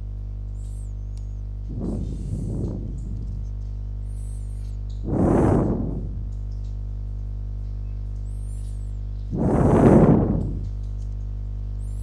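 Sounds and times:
low electrical hum: 0.0s - 12.0s
faint high chirps: 0.3s - 5.0s, 7.7s - 9.2s
rush of noise: 1.7s - 3.4s, 5.0s - 6.4s, 9.3s - 10.7s.

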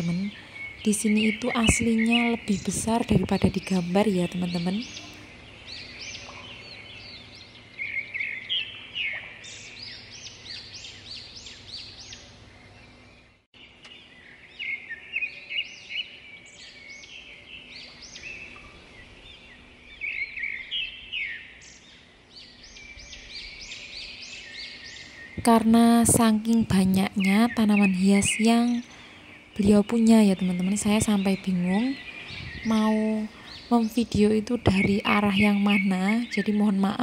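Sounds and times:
small birds chirping: 0.0s - 37.0s.

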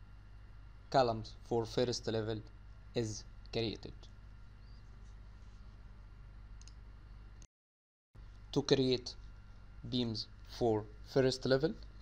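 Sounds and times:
low steady hum: 0.0s - 7.5s, 8.2s - 12.0s.

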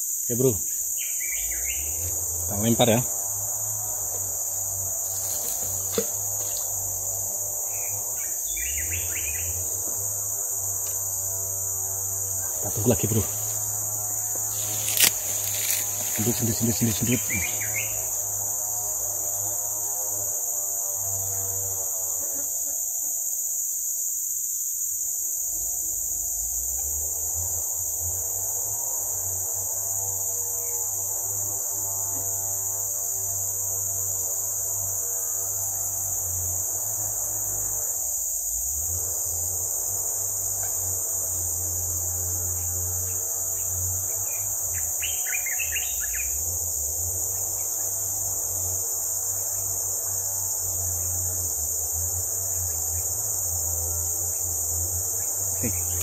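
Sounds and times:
insects chirring: 0.0s - 56.0s.

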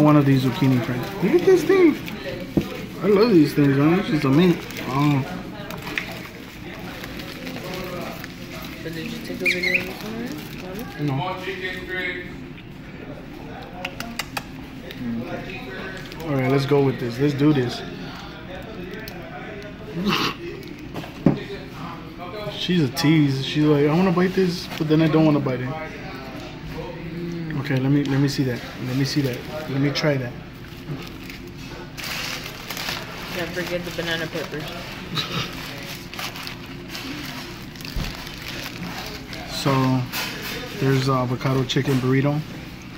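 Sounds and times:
low murmur of distant voices: 0.0s - 42.9s.

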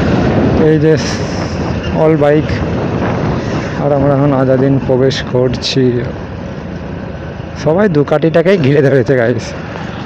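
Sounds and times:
wind and road noise: 0.0s - 10.0s
man talking: 0.6s - 1.3s, 1.9s - 2.7s, 3.8s - 6.2s, 7.6s - 9.6s.

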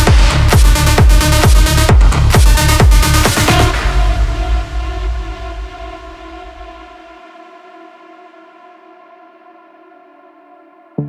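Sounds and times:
electronic dance bass: 0.0s - 6.8s.

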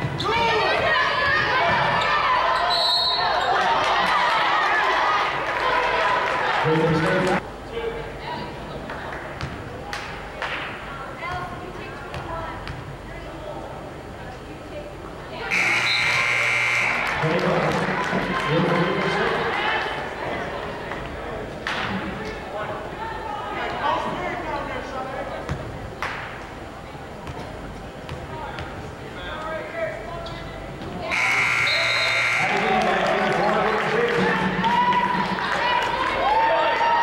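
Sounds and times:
voices in echoing hall: 0.0s - 37.0s
scoreboard buzzer: 15.5s - 17.3s, 31.1s - 33.0s.

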